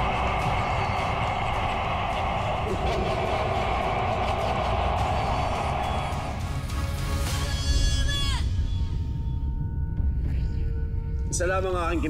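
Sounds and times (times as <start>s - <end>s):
dense steady drone: 0.0s - 7.3s
low rumble: 0.0s - 7.3s
dramatic soundtrack music: 0.0s - 12.0s.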